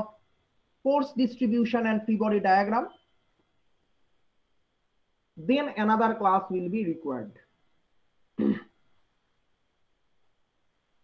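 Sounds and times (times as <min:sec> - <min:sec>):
man clearing his throat: 0:08.4 - 0:08.7.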